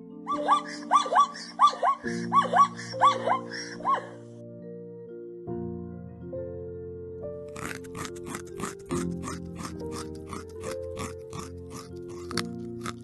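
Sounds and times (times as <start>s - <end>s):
gentle background music: 0.0s - 13.0s
rabbit chewing: 7.5s - 13.0s.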